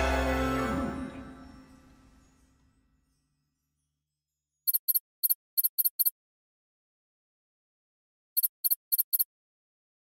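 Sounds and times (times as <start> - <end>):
high clicking typing blips: 4.7 - 6.1, 8.4 - 9.3.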